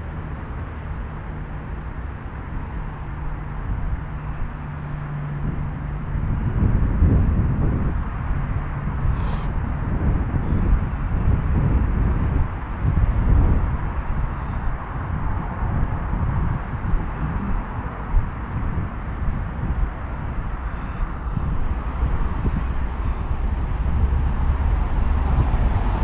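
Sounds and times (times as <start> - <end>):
steady low hum: 0.0 - 26.0
traffic rumble: 0.0 - 26.0
wind on microphone: 0.0 - 26.0.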